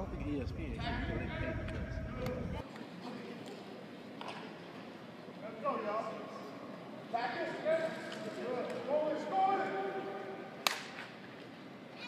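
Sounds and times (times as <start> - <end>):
people talking: 0.0 - 3.6.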